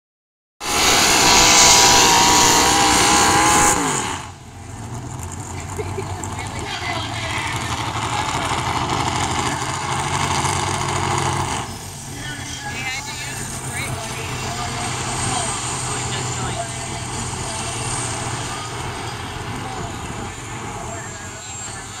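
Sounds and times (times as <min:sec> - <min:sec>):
crowd noise: 0:00.6 - 0:22.0
low steady engine drone: 0:00.6 - 0:22.0
tractor engine at full throttle: 0:00.6 - 0:22.0.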